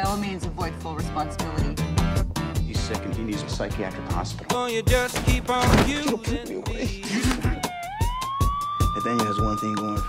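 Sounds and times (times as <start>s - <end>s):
trailer music with drum beat: 0.0s - 10.0s.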